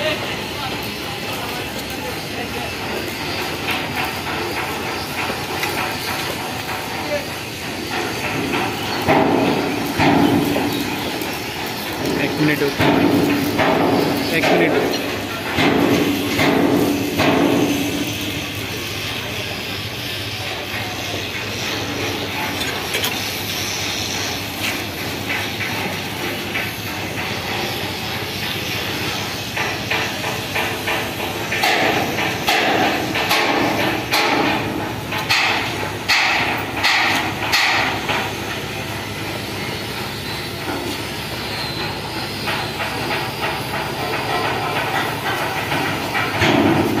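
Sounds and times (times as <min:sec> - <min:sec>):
steady background noise: 0:00.0 - 0:47.0.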